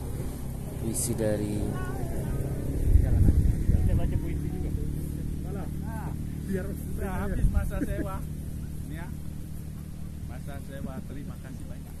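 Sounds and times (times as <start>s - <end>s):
steady low hum: 0.0s - 12.0s
voices in background: 0.8s - 12.0s.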